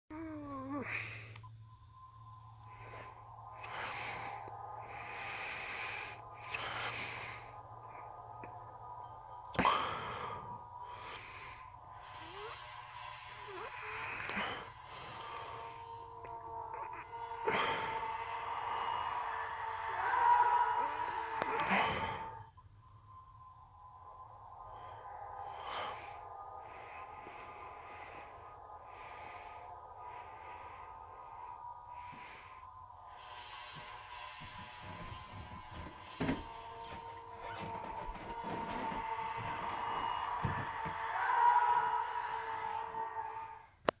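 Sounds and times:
eerie ambient drone music: 0.1s - 44.0s.

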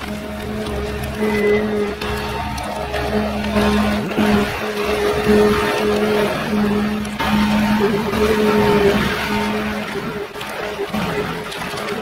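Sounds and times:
diesel engine and hydraulics: 0.0s - 12.0s.

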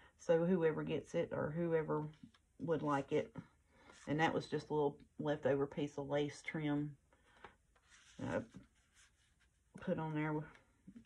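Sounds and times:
paper rustling: 7.3s - 9.6s.

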